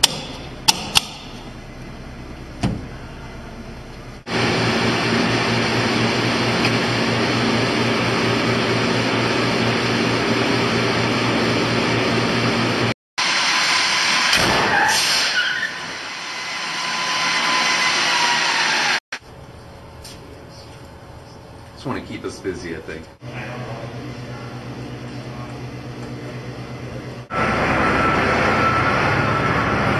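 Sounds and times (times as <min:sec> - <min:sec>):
mechanical hum with low drone: 0:00.0 - 0:12.9, 0:19.2 - 0:29.9
falling whine: 0:27.2 - 0:29.9.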